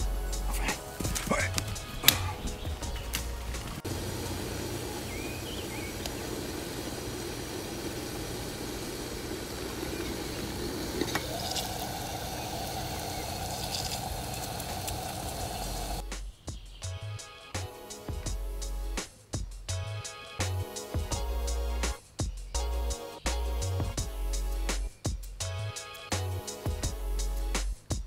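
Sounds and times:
camping stove flame hissing: 0:00.0 - 0:16.2, 0:20.4 - 0:22.0, 0:22.6 - 0:27.6
faint music: 0:00.0 - 0:28.0
stove click: 0:06.0 - 0:06.4.

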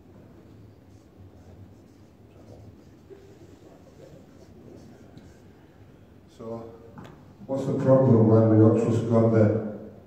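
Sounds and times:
low room hum: 0:00.0 - 0:10.0
marker pen writing on paper: 0:00.8 - 0:05.5.

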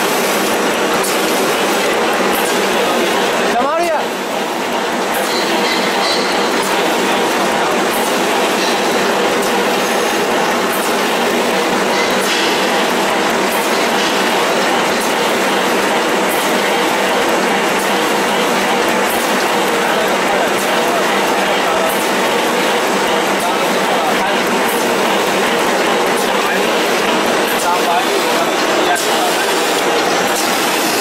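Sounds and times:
machine line mechanical clatter: 0:00.0 - 0:31.0.

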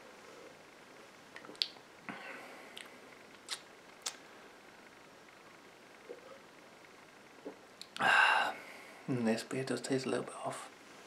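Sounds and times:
lip noises: 0:01.4 - 0:01.8, 0:02.7 - 0:04.2
mouth clicks: 0:01.4 - 0:01.8, 0:02.7 - 0:04.2, 0:07.5 - 0:08.1.

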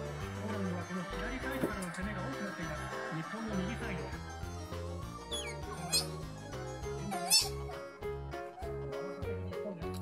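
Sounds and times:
background music: 0:00.0 - 0:10.0
otter pup squeaking: 0:05.2 - 0:06.3, 0:07.1 - 0:07.7.

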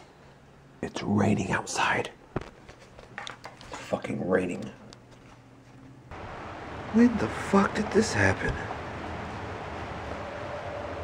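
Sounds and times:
rain hiss: 0:06.1 - 0:11.0.

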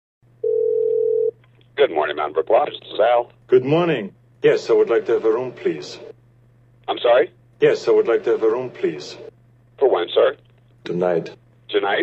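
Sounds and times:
faint low line hum: 0:00.2 - 0:12.0
telephone ringback beep: 0:00.4 - 0:01.3.

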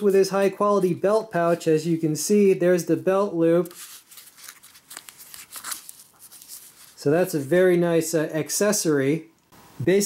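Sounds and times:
fabric pouch rustling: 0:03.7 - 0:07.0.

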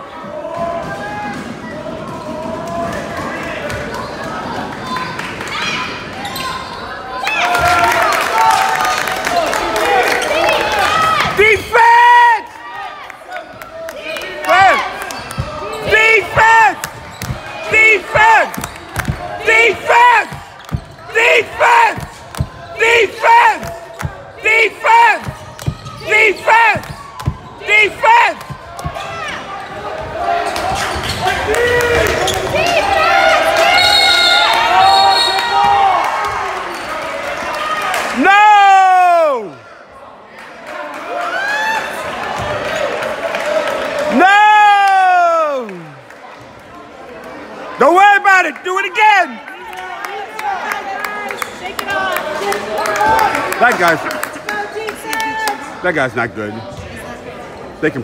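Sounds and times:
crowd voices and shouts: 0:00.0 - 0:58.0
basketball shoes squeaking: 0:06.2 - 0:07.0, 0:15.0 - 0:17.8, 0:20.2 - 0:21.1, 0:25.2 - 0:27.6, 0:28.5 - 0:32.8.

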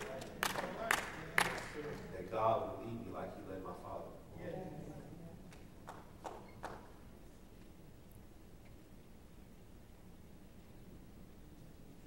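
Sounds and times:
sharp claps: 0:00.0 - 0:02.1, 0:05.5 - 0:07.0
murmur of voices: 0:00.0 - 0:05.6.

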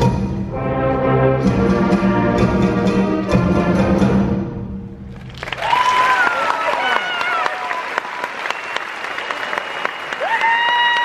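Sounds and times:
audience applause with cheers: 0:05.2 - 0:11.0.

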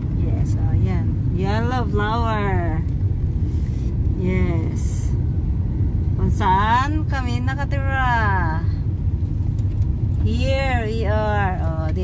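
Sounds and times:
car cabin road and engine rumble: 0:00.0 - 0:12.0.

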